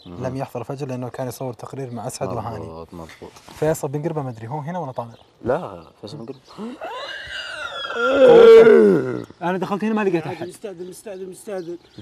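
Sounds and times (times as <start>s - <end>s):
man's drawn-out vocal cry: 6.8s - 9.3s.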